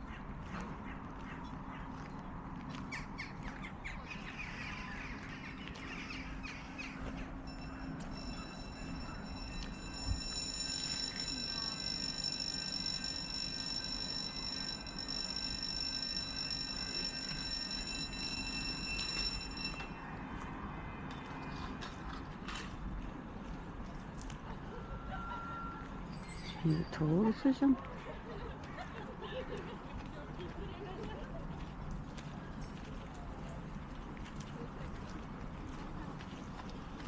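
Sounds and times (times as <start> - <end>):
outdoor background noise: 0.0 - 37.0.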